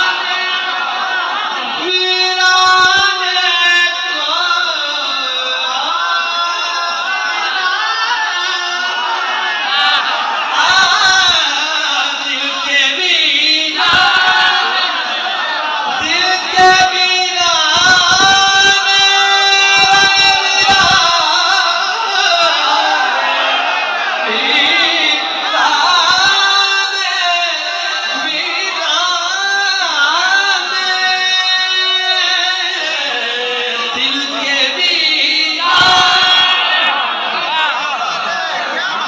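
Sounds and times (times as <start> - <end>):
man singing into a microphone: 0.0 - 39.0.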